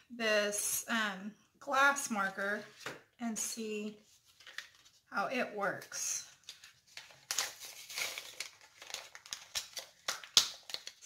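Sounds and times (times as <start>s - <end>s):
packaging crinkling: 6.4s - 11.0s.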